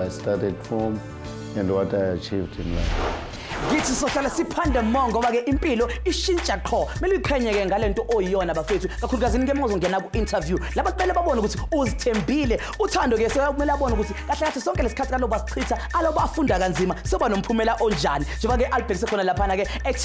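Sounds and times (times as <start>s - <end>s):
man talking: 1.6s - 3.0s
hip hop beat with bass: 3.5s - 20.0s.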